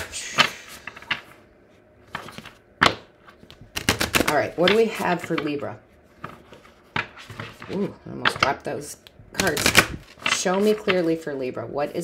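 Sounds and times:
cards clicking while shuffled: 0:02.1 - 0:05.5.

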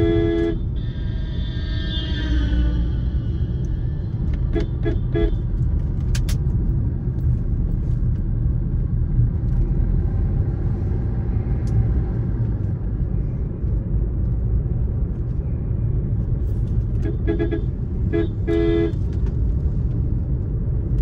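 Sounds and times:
car engine and tyres rumble: 0:00.0 - 0:21.0.

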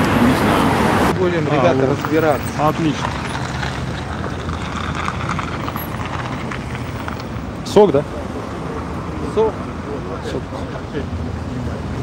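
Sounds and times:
road noise rumble: 0:00.0 - 0:12.0.

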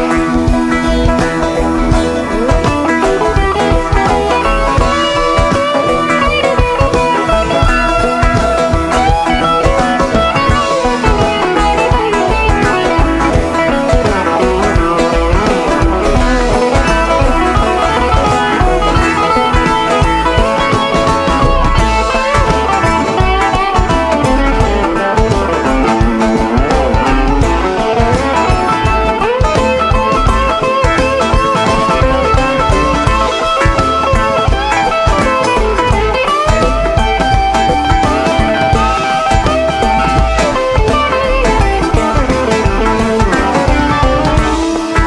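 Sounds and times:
banjo: 0:00.0 - 0:45.0
drums: 0:00.0 - 0:45.0
electric guitar lead: 0:00.0 - 0:45.0
live band playing instrumental: 0:00.0 - 0:45.0.

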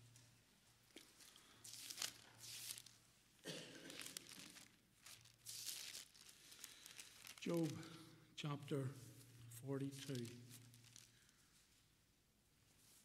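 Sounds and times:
pages rustling: 0:01.0 - 0:03.0, 0:03.8 - 0:07.9, 0:09.8 - 0:11.7.

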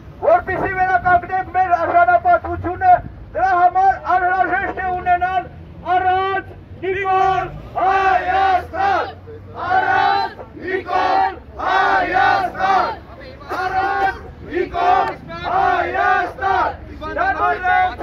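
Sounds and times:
crowd shouting rhythmic chant: 0:07.0 - 0:18.0.

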